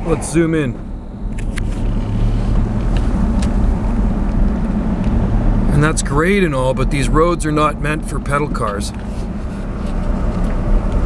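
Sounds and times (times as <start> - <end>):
car engine and tyre hum: 0.0 - 11.0.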